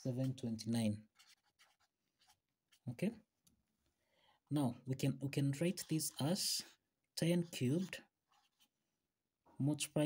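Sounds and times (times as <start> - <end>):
marker writing on paper: 0.0 - 3.2, 5.1 - 8.9.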